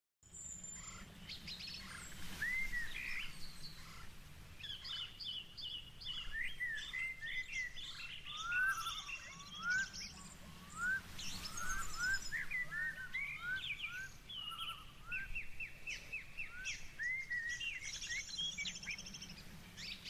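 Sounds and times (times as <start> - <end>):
birds chirping and singing: 0.3 - 20.0.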